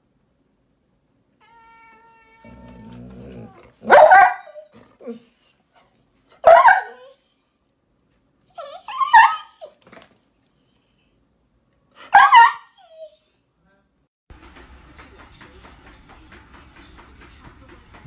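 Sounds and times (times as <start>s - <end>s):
dog crying: 1.4s - 5.4s, 6.4s - 7.3s, 8.5s - 9.8s, 12.0s - 13.3s.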